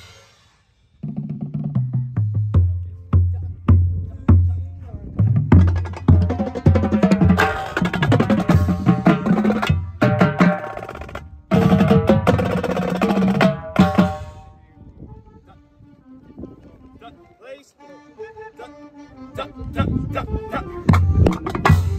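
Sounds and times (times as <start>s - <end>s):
bass drums beating: 1.0s - 14.4s
tenor drums and snares: 5.2s - 14.5s, 20.9s - 21.9s.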